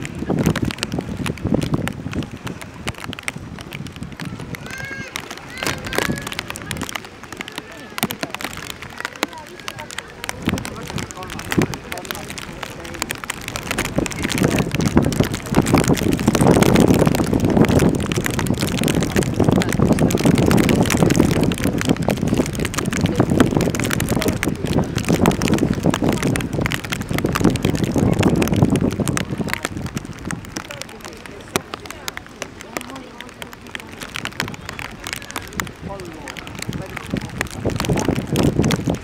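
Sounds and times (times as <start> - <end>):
outdoor background noise: 0.0 - 39.0
people talking: 0.0 - 39.0.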